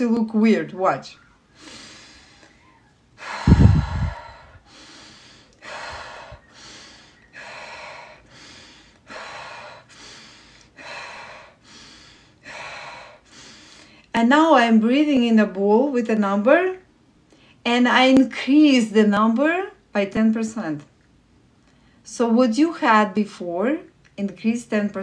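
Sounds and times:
woman breathing quickly: 1.5s - 14.1s.

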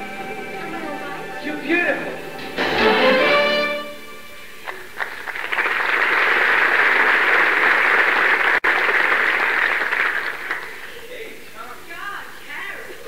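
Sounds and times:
audience applauding: 4.6s - 11.2s.

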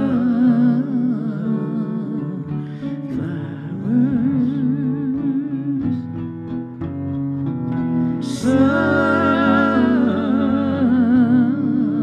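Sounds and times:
acoustic guitar plucked notes: 0.0s - 12.0s
electric guitar melody: 0.0s - 12.0s.

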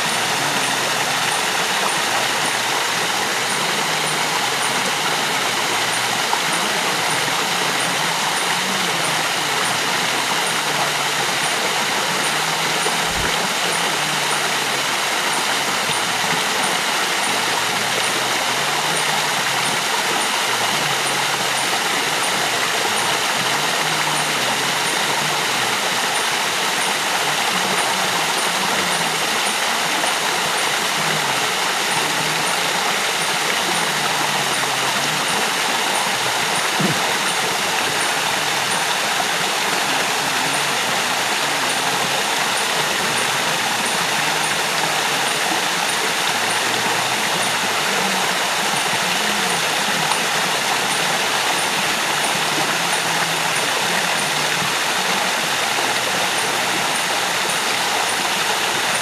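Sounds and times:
waterfall rushing into pool: 0.0s - 59.0s.

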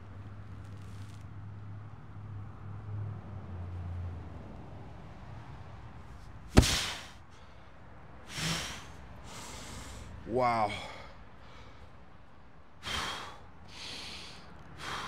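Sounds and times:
sandbags thudding on concrete: 6.5s - 7.1s
hard exhale: 6.6s - 7.6s, 8.3s - 11.9s, 12.8s - 15.0s.

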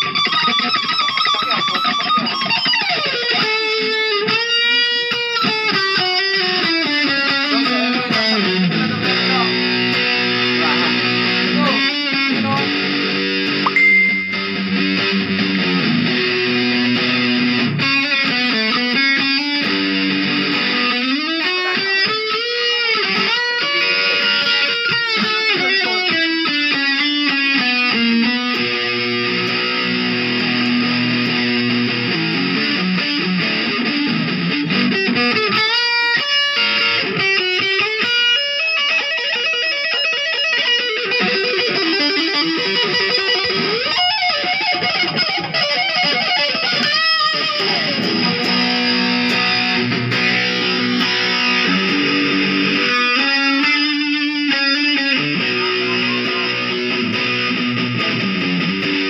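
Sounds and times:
electric guitar lead playing: 0.0s - 59.0s.

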